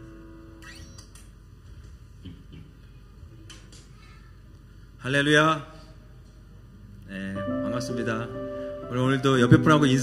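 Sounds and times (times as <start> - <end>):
held musical tone: 7.4 - 10.0.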